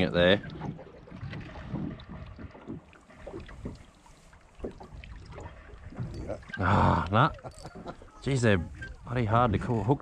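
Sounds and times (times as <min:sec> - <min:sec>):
small waves lapping against hull: 0:00.0 - 0:10.0.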